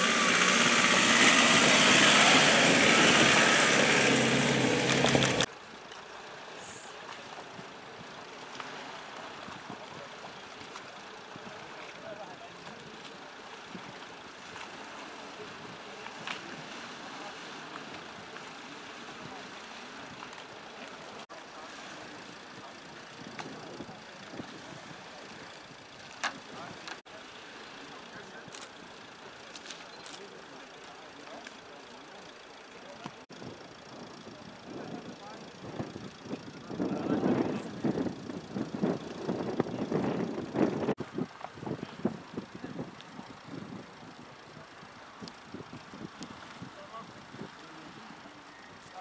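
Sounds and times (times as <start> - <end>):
outdoor background noise: 0.0 - 49.0
people talking: 9.5 - 13.9, 15.2 - 25.5, 26.2 - 28.8, 29.7 - 38.2, 46.6 - 49.0.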